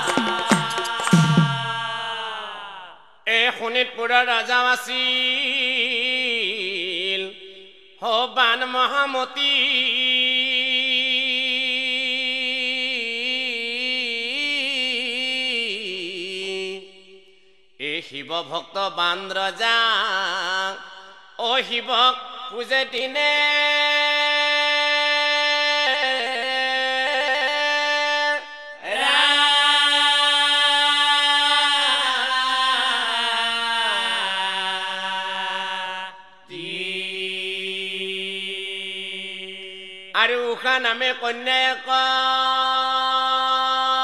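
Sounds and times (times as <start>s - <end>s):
man singing a devotional chant: 0.0s - 17.2s, 17.8s - 44.0s.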